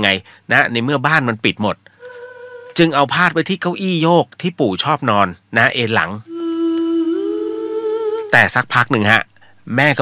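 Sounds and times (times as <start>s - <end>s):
person humming: 2.0s - 2.8s, 6.2s - 8.4s.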